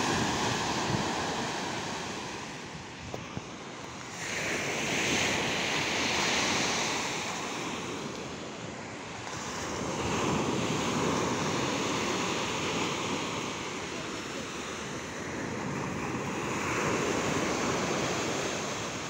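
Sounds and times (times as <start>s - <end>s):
sea waves washing up a beach: 0.0s - 19.0s.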